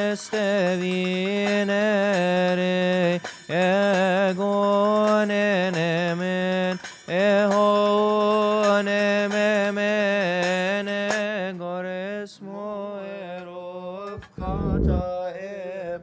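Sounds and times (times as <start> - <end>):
man chanting a hymn: 0.0 - 16.0.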